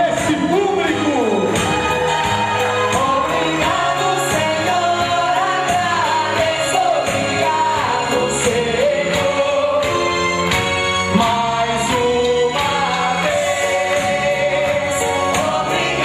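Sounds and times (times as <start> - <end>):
band playing a steady beat: 0.0 - 16.0
male lead singer: 2.6 - 10.2, 11.1 - 16.0.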